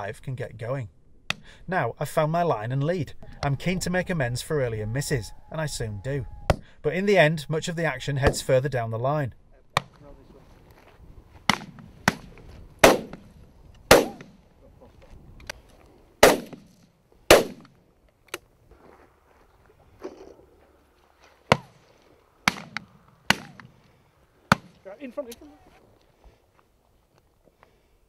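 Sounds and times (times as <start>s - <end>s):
shotguns firing with echo: 11.5s - 13.3s, 13.9s - 14.4s, 16.2s - 17.8s, 22.4s - 23.8s.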